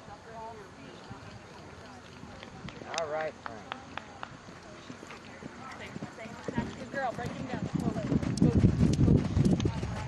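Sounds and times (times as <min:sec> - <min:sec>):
horse hooves cantering on sand: 0:00.9 - 0:10.0.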